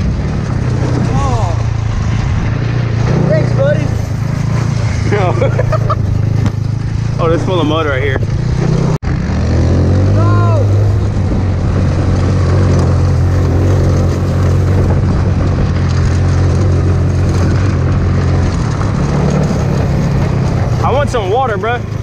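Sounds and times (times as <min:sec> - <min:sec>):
go-kart engine running: 0:00.0 - 0:22.0.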